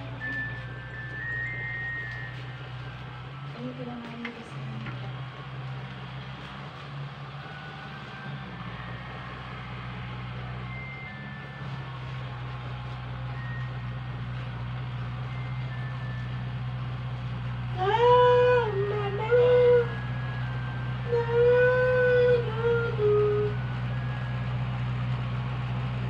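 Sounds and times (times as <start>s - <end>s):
tractor engine humming: 0.0s - 26.0s.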